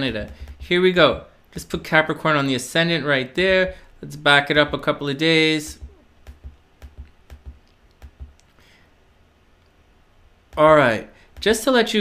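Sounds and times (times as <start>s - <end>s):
computer mouse clicking: 0.1s - 0.7s, 5.7s - 8.6s.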